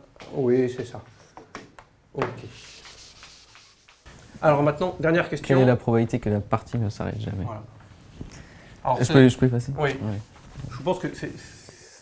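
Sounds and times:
eraser rubbing on blackboard: 2.5 - 4.1.

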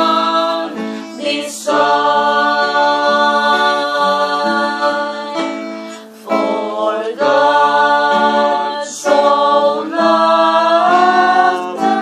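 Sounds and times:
acoustic guitar: 0.0 - 12.0
man singing slow song: 11.3 - 12.0.

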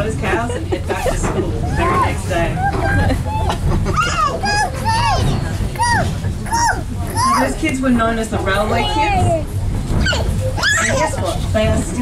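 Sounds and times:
toddlers squealing and babbling: 1.6 - 7.6, 8.7 - 11.5.

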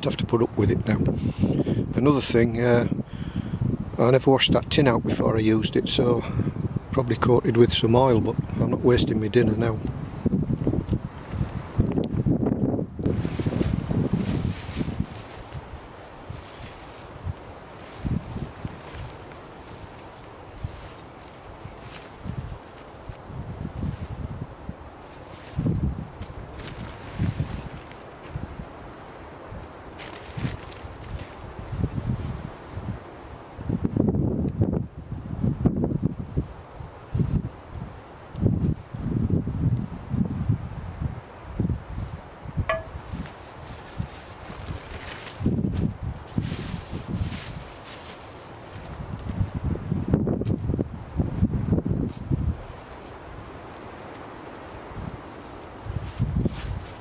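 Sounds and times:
wind buffeting microphone: 0.0 - 47.8, 48.6 - 54.0, 54.6 - 57.0.

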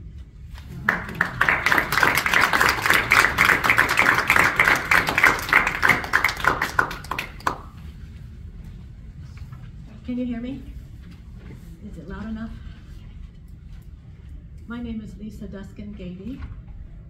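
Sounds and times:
audience clapping: 0.5 - 7.9.

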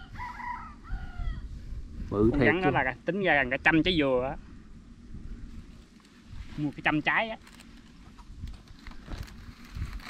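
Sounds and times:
rooster crowing: 0.0 - 1.5.

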